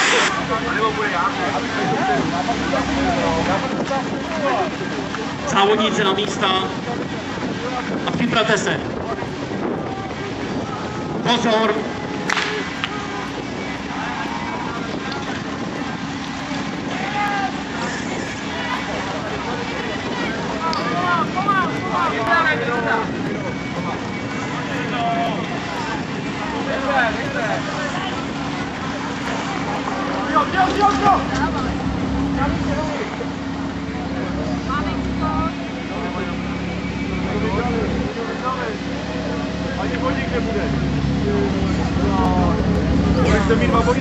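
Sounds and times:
pump engine running: 0.0 - 3.7
people shouting and cheering: 9.6 - 39.6.

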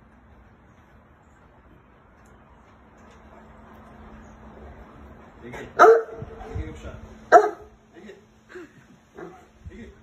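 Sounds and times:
large dog barking: 5.8 - 6.4, 7.3 - 7.8.

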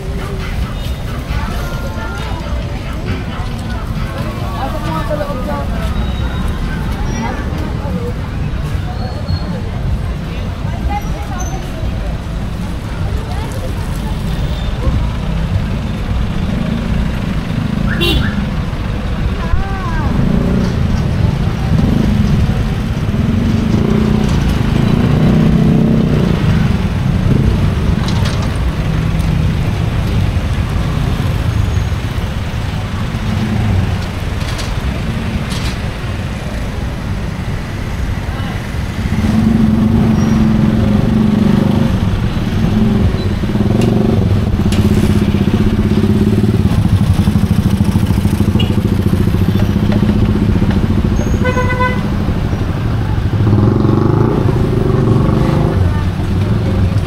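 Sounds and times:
background voices: 0.0 - 17.8
motorcycle engines passing: 0.0 - 57.0
horn toot: 17.9 - 18.4, 51.2 - 52.2.

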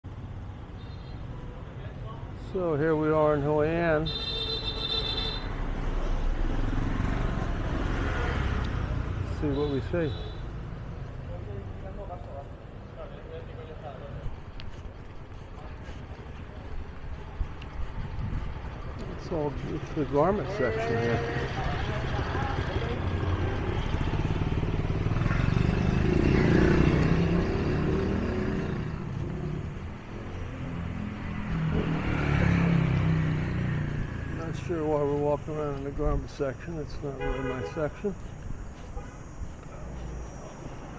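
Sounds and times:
motorbike and scooter traffic: 0.1 - 40.9.

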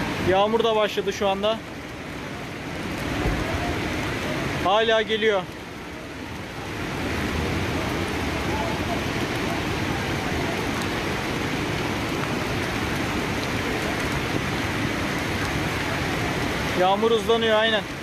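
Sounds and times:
floodwater rushing: 0.0 - 18.0
rain falling: 0.0 - 18.0.

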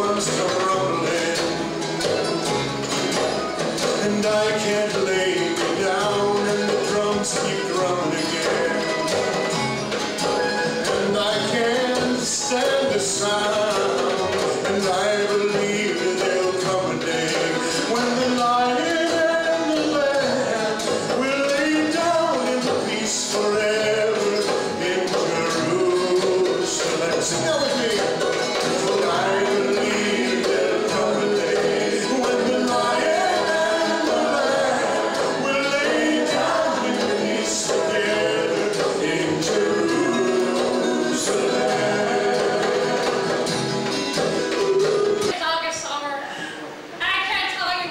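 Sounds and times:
man singing: 0.0 - 1.9, 3.8 - 9.6, 10.8 - 43.6
goblet hand drum: 0.0 - 45.4
strummed acoustic guitar: 0.0 - 45.4
voices blending like a choir: 28.7 - 45.4.

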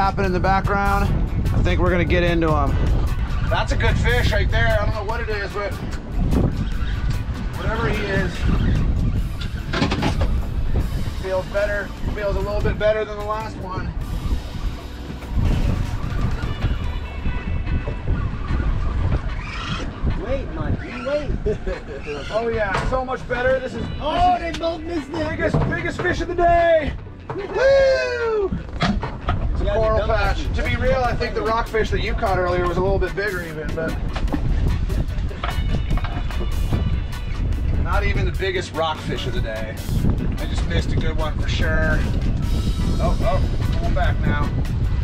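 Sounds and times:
background music: 0.0 - 20.1, 21.5 - 45.0
wind buffeting microphone: 0.0 - 45.0.

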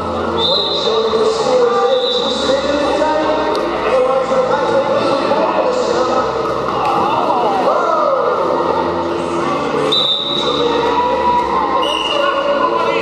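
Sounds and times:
background music: 0.0 - 13.0
referee's whistle: 0.3 - 1.0, 1.8 - 2.4, 9.9 - 10.6, 11.7 - 12.4.

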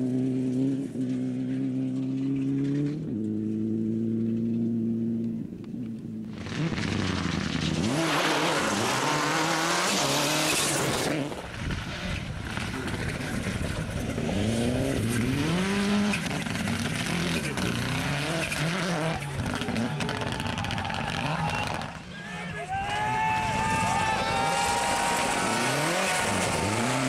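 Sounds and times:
rally car engine revving: 0.0 - 22.1, 23.6 - 27.0.

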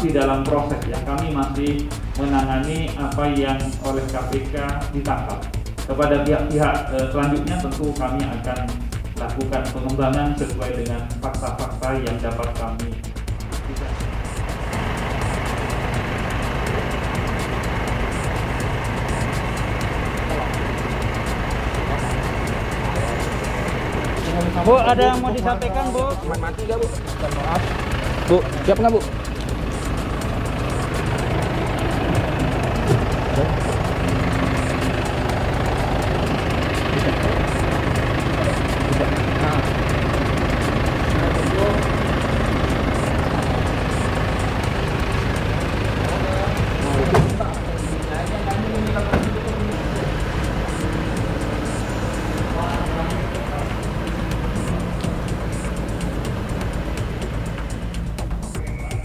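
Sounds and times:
vehicle engine running: 0.0 - 59.0
crowd shuffling: 13.5 - 57.9
indistinct crowd voices: 13.5 - 59.0.

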